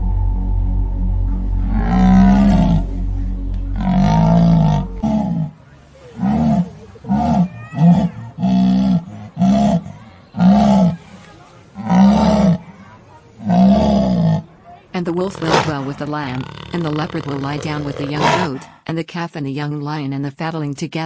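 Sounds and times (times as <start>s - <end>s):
lion roaring: 1.4s - 11.1s, 11.8s - 12.8s, 13.4s - 14.6s.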